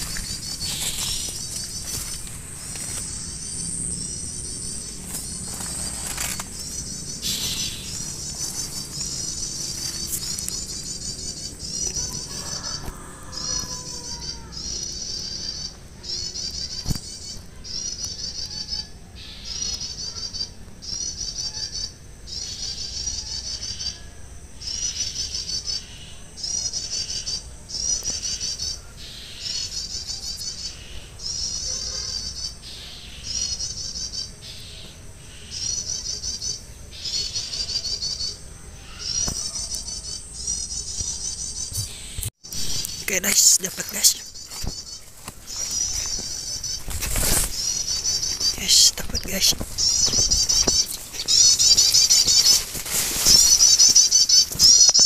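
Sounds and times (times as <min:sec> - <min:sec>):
bird high-pitched trilling: 0:35.4 - 0:55.0.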